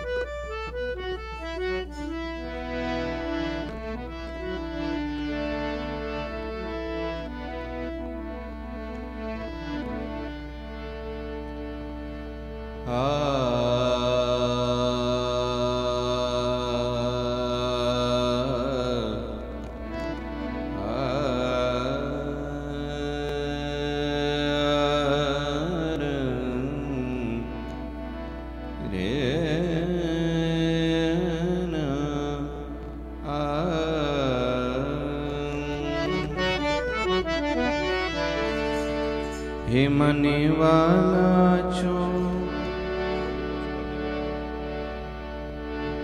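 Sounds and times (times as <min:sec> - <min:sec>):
steady instrumental drone: 0:00.0 - 0:46.0
man singing devotional song: 0:12.6 - 0:46.0.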